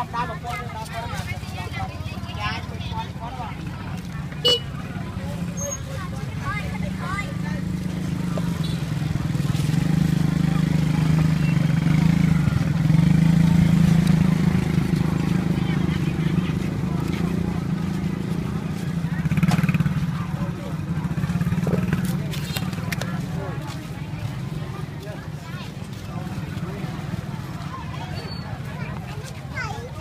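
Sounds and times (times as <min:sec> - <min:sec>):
street voices: 0:00.0 - 0:30.0
engine humming: 0:00.7 - 0:30.0.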